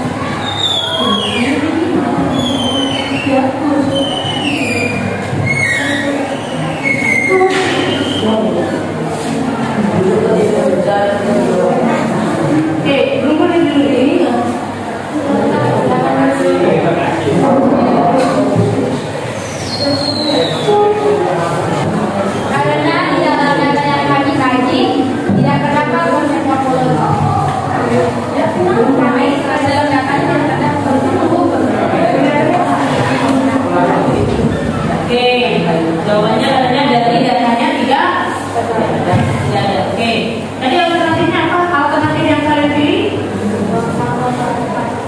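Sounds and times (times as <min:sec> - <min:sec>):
students chattering: 0:00.0 - 0:45.0
high squeals sliding down: 0:02.3 - 0:08.3.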